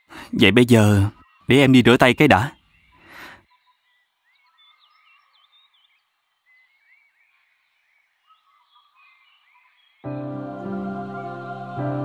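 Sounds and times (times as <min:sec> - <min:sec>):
faint birds chirping: 0:00.0 - 0:11.8.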